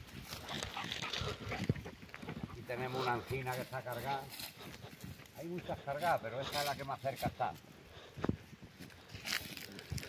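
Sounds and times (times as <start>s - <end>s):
footsteps on dry leaves: 0.0s - 10.0s.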